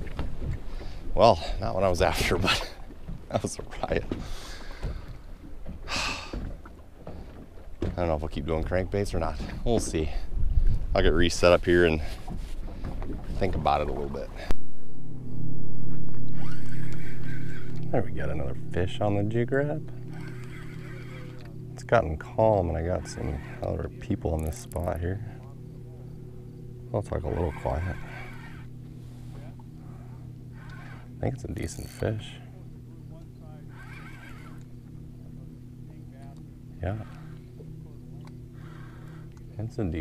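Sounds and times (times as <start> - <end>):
boat motor humming: 0.0 - 40.0
fishing reel squeaking: 16.3 - 25.4, 27.0 - 39.5.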